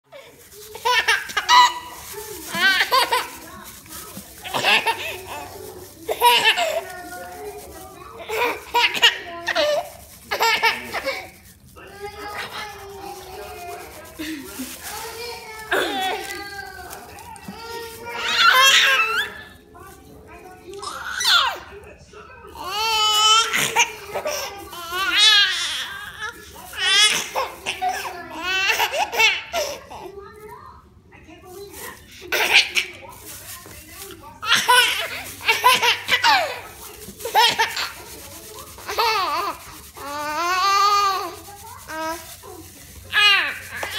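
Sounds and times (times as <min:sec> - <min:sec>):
baby laughing: 0:00.6 - 0:07.3, 0:08.2 - 0:11.4, 0:12.2 - 0:16.4, 0:17.8 - 0:19.5, 0:22.6 - 0:30.0, 0:32.2 - 0:33.2, 0:34.4 - 0:38.2, 0:38.8 - 0:42.2
baby belly laughing: 0:00.7 - 0:03.4, 0:04.4 - 0:05.5, 0:06.1 - 0:06.9, 0:08.2 - 0:11.3.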